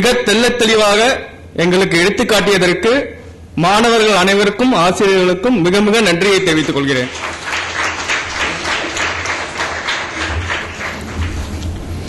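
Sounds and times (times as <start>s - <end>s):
audience applauding: 6.7s - 11.8s.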